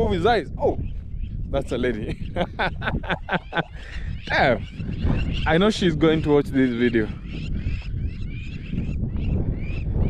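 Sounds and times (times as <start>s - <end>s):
wind rumble on microphone: 0.0s - 10.0s
flock of birds calling: 0.8s - 10.0s.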